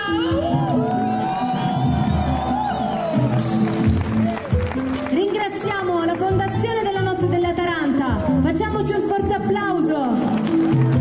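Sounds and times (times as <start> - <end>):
crowd cheering: 0.5 - 5.8.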